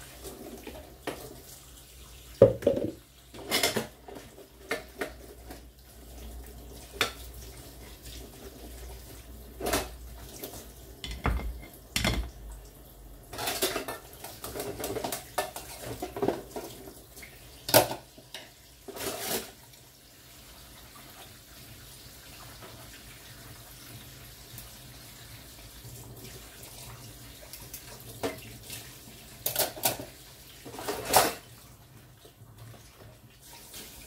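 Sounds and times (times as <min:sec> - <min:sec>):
running water: 0:00.0 - 0:34.0
knocks: 0:02.4 - 0:03.0
dishes clinking: 0:02.4 - 0:04.0, 0:11.0 - 0:12.4.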